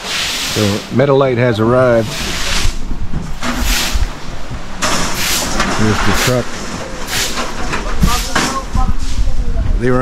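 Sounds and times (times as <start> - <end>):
steady low rumble: 0.8 - 10.0.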